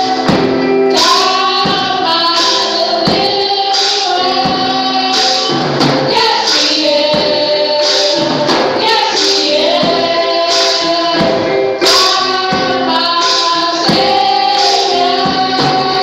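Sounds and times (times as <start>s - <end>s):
tambourine struck on a beat: 0.0s - 16.0s
women singing gospel music: 0.0s - 16.0s.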